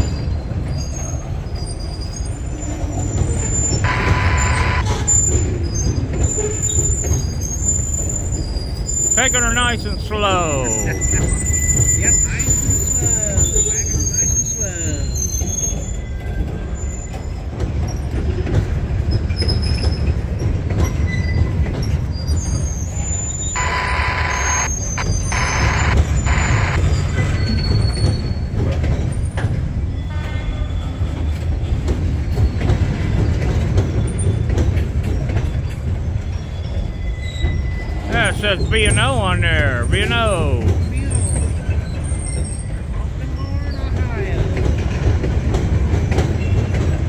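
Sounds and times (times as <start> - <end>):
train wheels rumbling on rail: 0.0 - 9.7, 10.7 - 23.6, 25.0 - 38.1, 40.6 - 47.0
thin wheel squeals: 10.8 - 17.2
high-pitched screech: 23.6 - 26.8.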